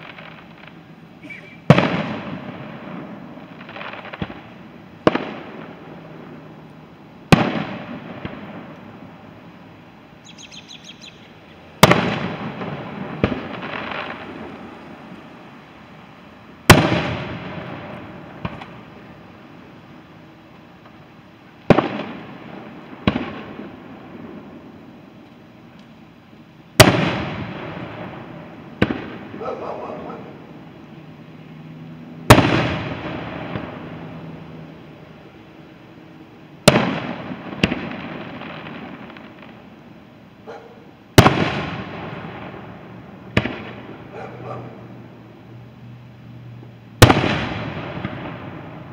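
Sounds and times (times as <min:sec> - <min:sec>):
rumble after firework bangs: 0:00.0 - 0:09.6, 0:11.7 - 0:31.0, 0:32.2 - 0:35.0, 0:36.5 - 0:39.8, 0:41.1 - 0:44.9, 0:47.0 - 0:48.9.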